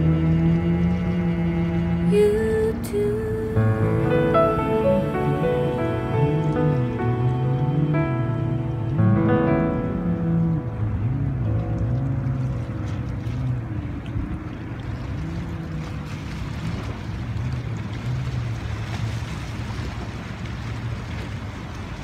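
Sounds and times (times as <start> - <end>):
motorboat droning: 0.0 - 22.0
sea surf: 0.0 - 22.0
wind: 0.0 - 22.0.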